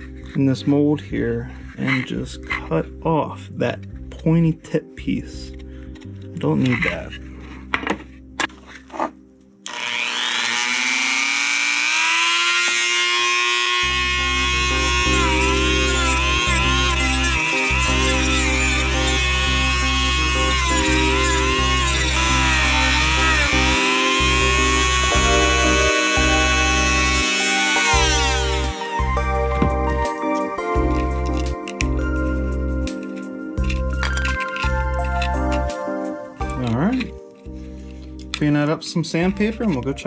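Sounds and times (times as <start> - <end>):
rotary tool whining: 8.6 - 35.8
music with heavy bass: 27.8 - 33.0.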